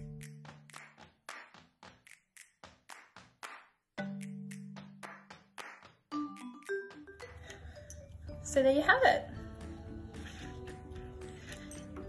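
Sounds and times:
rhythm of light claps: 0.0 - 7.7
background music held notes: 6.1 - 12.0.

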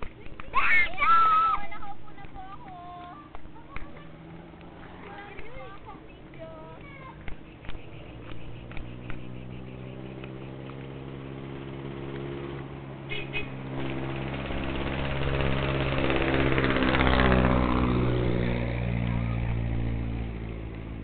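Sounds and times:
vehicle engine passing by: 2.9 - 21.0
high chirps: 7.0 - 11.6.

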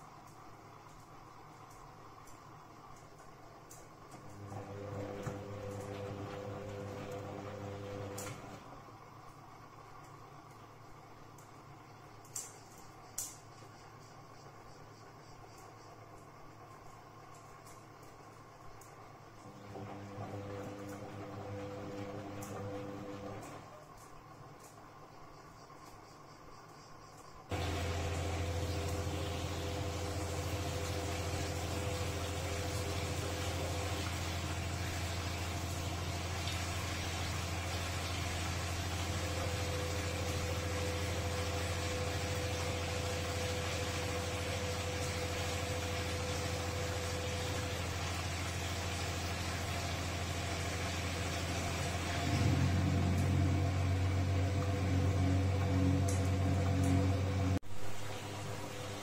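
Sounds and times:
washing machine motor hum: 0.0 - 26.0, 27.4 - 59.0.

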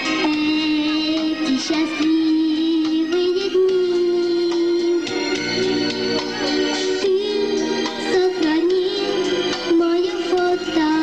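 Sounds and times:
pop song with singing: 0.0 - 11.0.

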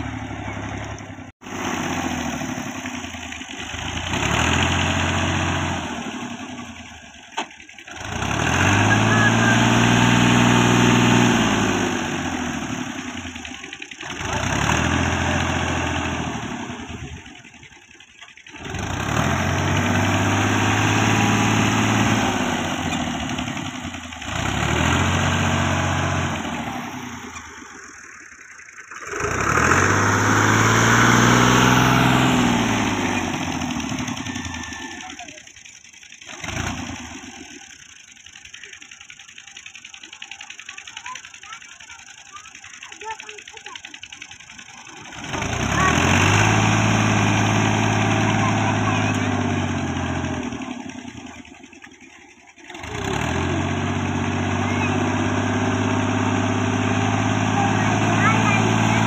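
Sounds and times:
tractor diesel engine revving: 0.0 - 59.0.

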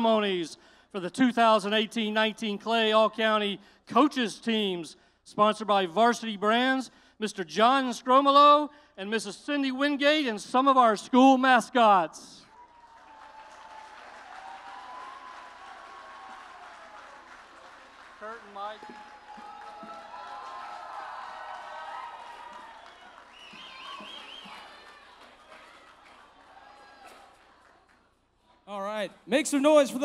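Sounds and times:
whoops: 12.5 - 17.3, 18.8 - 27.3
crowd cheering and calling out: 12.5 - 27.6
people clapping: 12.5 - 28.6.

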